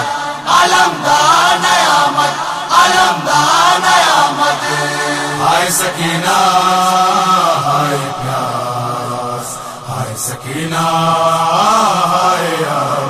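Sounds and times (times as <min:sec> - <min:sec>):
voices chanting a lament: 0:00.0 - 0:13.0.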